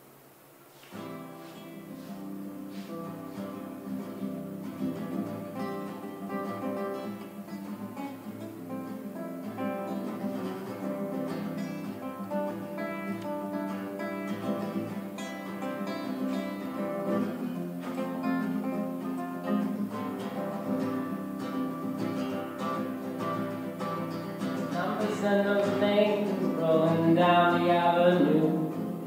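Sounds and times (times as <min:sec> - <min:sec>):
acoustic guitar playing: 0:00.0 - 0:29.0.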